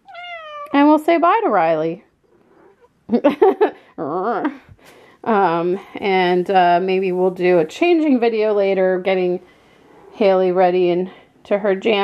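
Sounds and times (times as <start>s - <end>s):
cat meowing: 0.0s - 0.8s.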